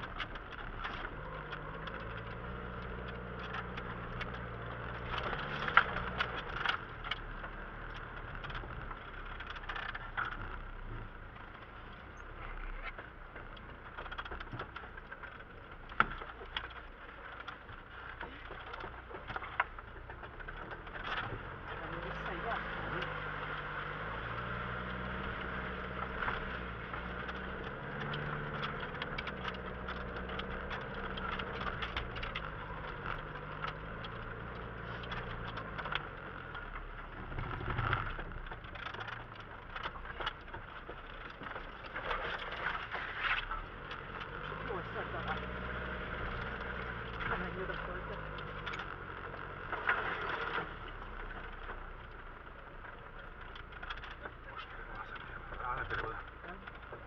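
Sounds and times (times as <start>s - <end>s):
off-road vehicle engine: 0.0s - 57.0s
vehicle body knocking and rattling: 0.0s - 57.0s.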